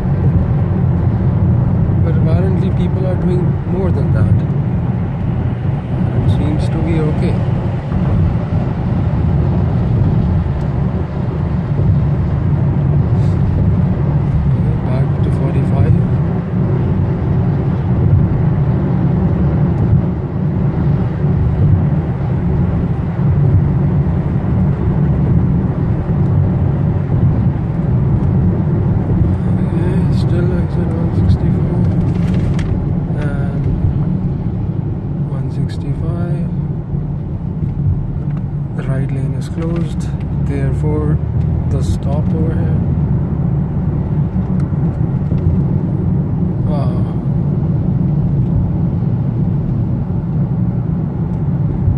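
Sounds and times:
car engine and road noise: 0.0s - 51.9s.

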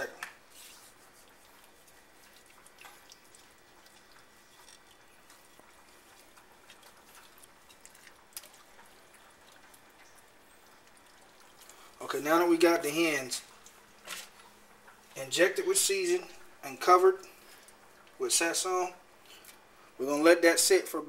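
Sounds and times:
hands rubbing raw poultry: 0.4s - 11.7s.

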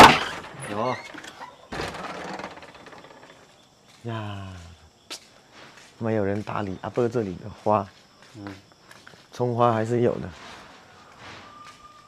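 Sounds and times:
metal gate scraping rattle: 0.0s - 3.5s.

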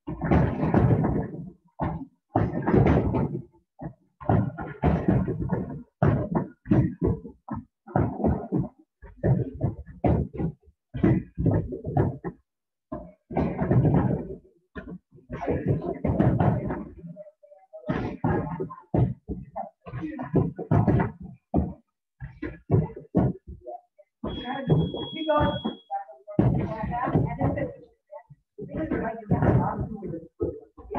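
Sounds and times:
kicks thudding on heavy bags: 4.2s - 7.2s.

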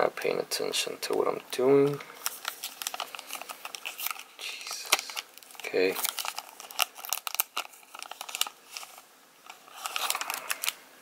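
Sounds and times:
foil wrapper crinkling: 1.1s - 10.8s.

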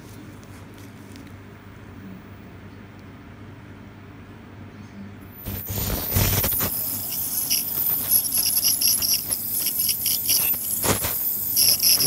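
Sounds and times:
dental scaler whining: 5.3s - 12.0s.

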